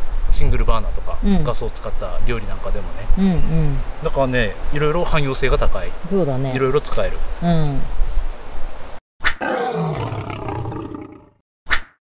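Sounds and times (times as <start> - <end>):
outdoor camp site background: 0.0 - 12.0
low falling drawn-out growl: 9.4 - 11.4.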